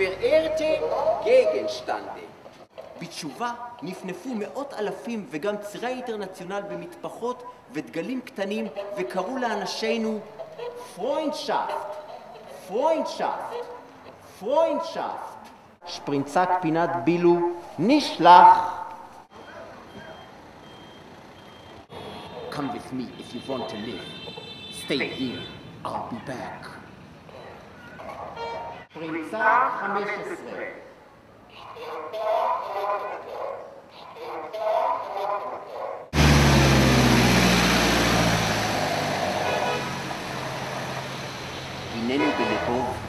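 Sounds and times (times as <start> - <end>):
low street noise: 0.0 - 43.0
reversing alarm beeping: 19.3 - 22.3
vehicle engine passing close: 36.2 - 43.0.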